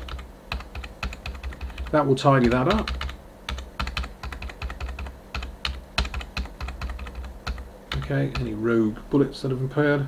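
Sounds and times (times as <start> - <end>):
keyboard keys clicking: 0.0 - 8.6
steady low hum: 0.0 - 10.0.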